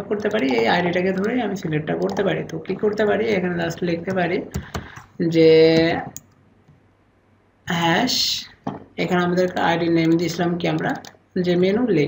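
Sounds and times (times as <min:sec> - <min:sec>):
computer keyboard keystroke: 0:00.2 - 0:01.4, 0:02.0 - 0:03.1.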